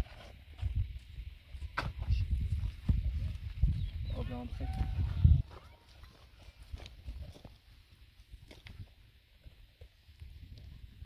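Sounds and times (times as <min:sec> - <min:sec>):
wind rumble on microphone: 0:00.0 - 0:05.7, 0:08.2 - 0:11.0.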